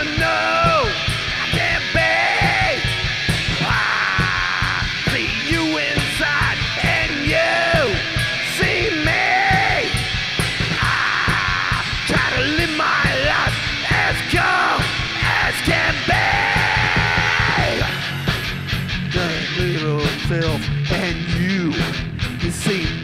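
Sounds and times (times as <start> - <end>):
person singing and shouting: 0.0 - 18.1, 19.1 - 23.0
drums: 0.0 - 23.0
guitar: 0.0 - 23.0.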